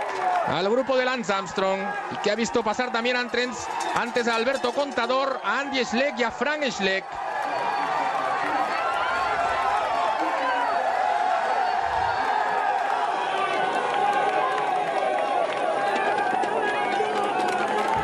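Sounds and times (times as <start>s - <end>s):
crowd shouting and cheering: 0.0s - 18.0s.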